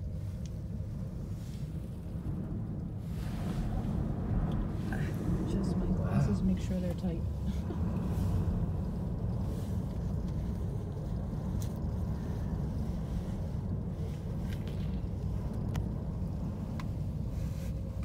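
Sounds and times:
wind buffeting cabin: 0.0 - 18.0.

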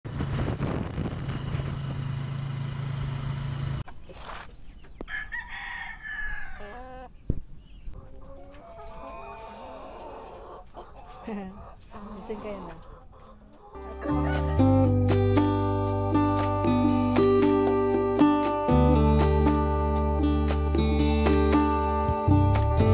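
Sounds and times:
motorcycle engine running: 0.1 - 3.8
rooster crowing: 5.1 - 7.1, 13.8 - 14.8
hens clucking: 6.1 - 15.0.

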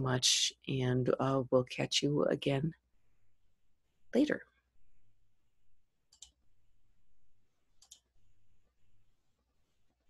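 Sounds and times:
computer mouse clicking: 6.1 - 6.4, 7.8 - 8.2.

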